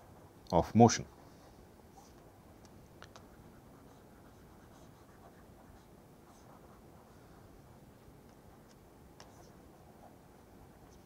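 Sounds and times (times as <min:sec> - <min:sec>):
stylus scratching and tapping on tablet: 0:01.1 - 0:11.0.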